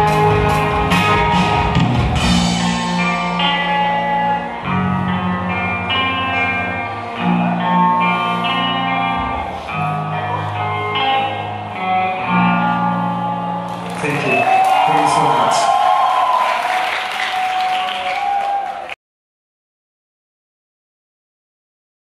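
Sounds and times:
rock band ringing guitar chords: 0.0s - 16.4s.

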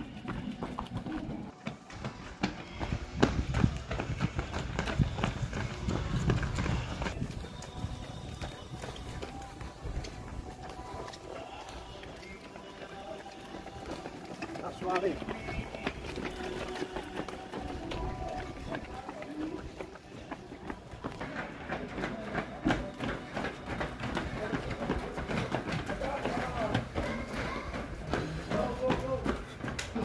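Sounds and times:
running footsteps on stone pavement: 0.0s - 30.0s
voices in background: 5.2s - 30.0s.

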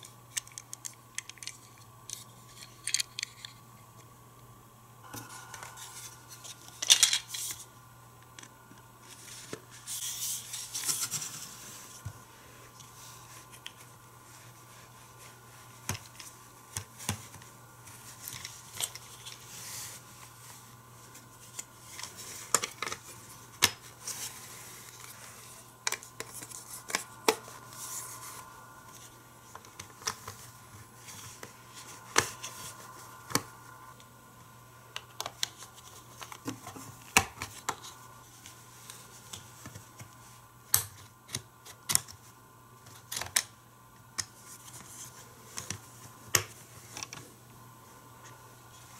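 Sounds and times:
faint steady hum: 0.0s - 48.9s.

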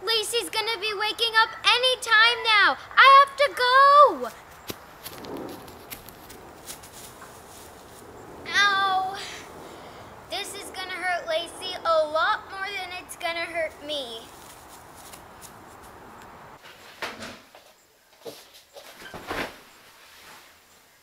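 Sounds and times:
girl's voice: 0.0s - 4.4s, 8.5s - 9.5s, 10.3s - 14.4s
background hiss: 0.0s - 21.0s
soft rustles: 4.2s - 8.4s, 13.6s - 17.0s, 17.6s - 20.9s.

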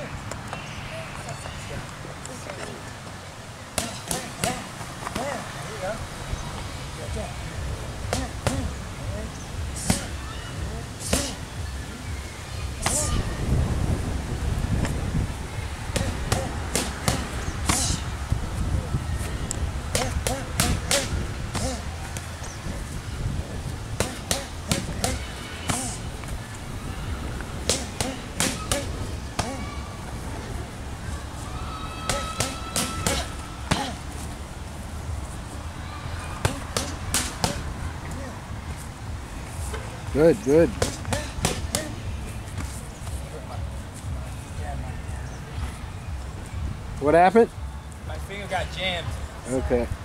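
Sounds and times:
boxing gloves smacking mitts: 3.8s - 5.4s, 11.0s - 11.4s, 15.9s - 18.0s, 27.6s - 29.6s, 32.0s - 34.0s, 36.4s - 37.7s, 40.7s - 42.8s.

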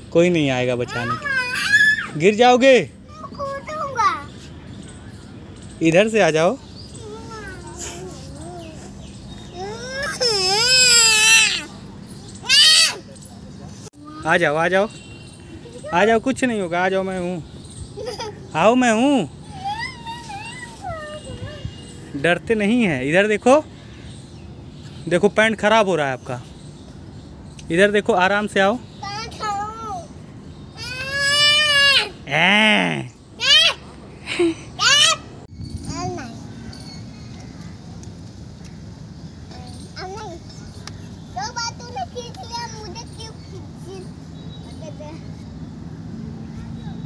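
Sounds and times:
child shouting playfully: 0.9s - 2.2s, 3.1s - 4.3s, 9.5s - 11.8s, 12.4s - 13.1s, 19.5s - 21.8s, 29.0s - 30.1s, 30.8s - 32.2s, 33.4s - 33.9s, 34.8s - 35.4s
small boy squealing: 1.4s - 2.2s, 9.5s - 11.8s, 12.4s - 13.1s, 19.4s - 21.6s.

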